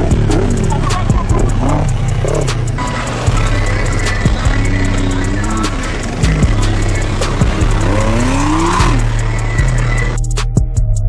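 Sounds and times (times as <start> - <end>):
vehicle engines revving: 0.0 - 10.4
music with heavy bass beat: 0.0 - 11.0.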